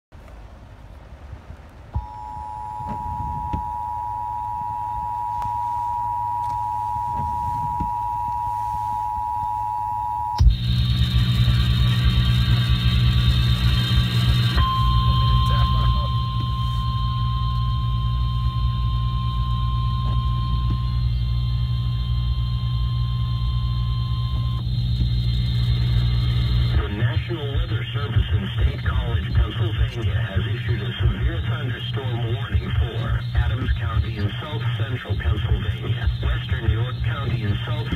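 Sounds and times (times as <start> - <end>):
humming radio feed: 1.9 - 37.9
two-tone alert signal: 2.0 - 10.6, 14.6 - 24.6.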